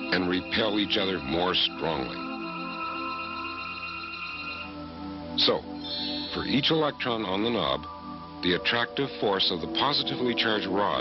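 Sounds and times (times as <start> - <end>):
ambient music with held notes: 0.0 - 11.0.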